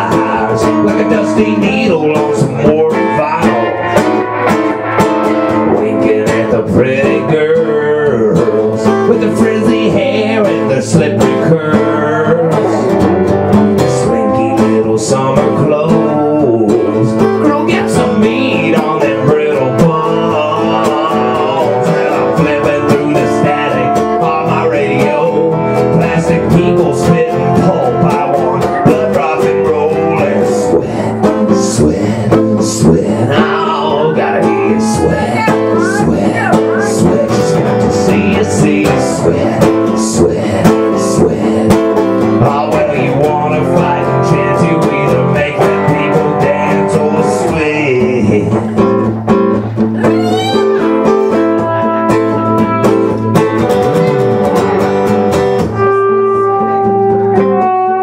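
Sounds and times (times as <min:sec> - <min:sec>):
acoustic guitar strumming: 0:00.0 - 0:58.0
electric guitar lead line: 0:00.0 - 0:58.0.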